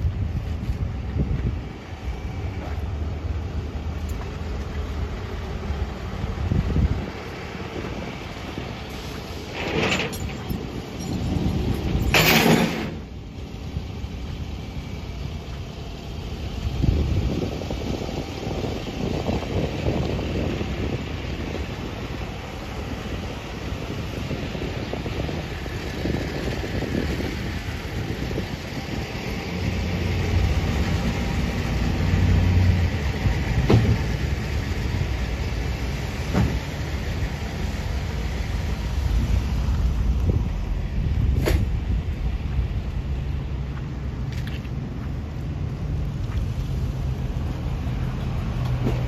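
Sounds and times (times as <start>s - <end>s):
road traffic rumbling: 0.0s - 49.0s.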